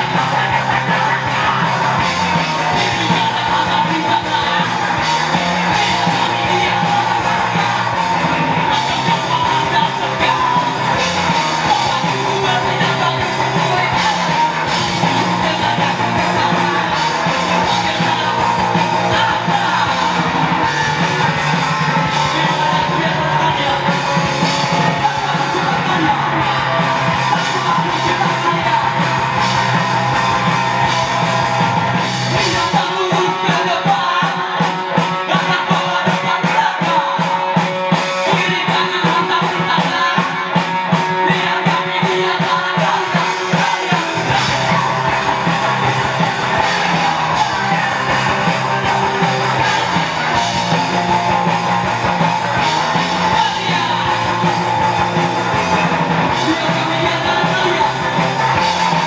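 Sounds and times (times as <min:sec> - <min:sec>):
person singing: 0:00.0 - 0:59.0
rock band playing live: 0:00.0 - 0:59.0.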